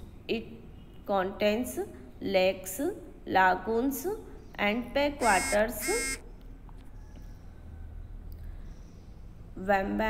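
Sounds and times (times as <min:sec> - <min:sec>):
woman's voice: 0:01.1 - 0:06.1.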